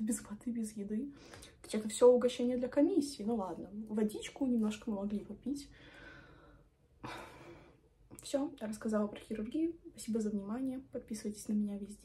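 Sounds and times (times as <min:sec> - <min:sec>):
woman sighing: 0:07.0 - 0:07.8.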